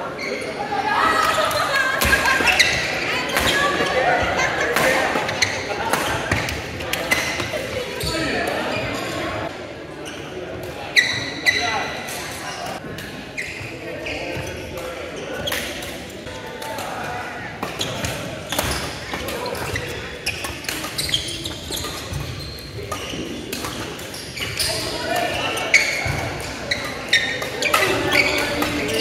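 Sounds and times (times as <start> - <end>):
people talking in echoing hall: 0.0 - 29.0
rackets hitting shuttlecock: 17.6 - 29.0.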